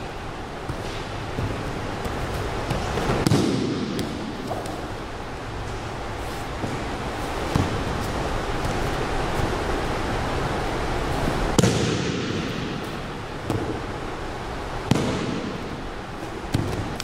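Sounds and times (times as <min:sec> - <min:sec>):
steady room noise hiss: 0:00.0 - 0:17.0.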